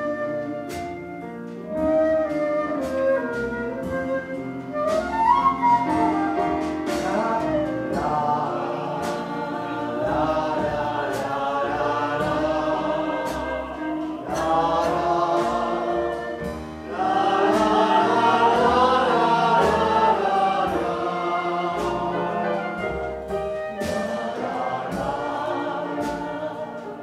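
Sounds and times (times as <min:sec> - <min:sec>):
live band playing: 0:00.0 - 0:27.0
group singing in chorus: 0:07.0 - 0:27.0.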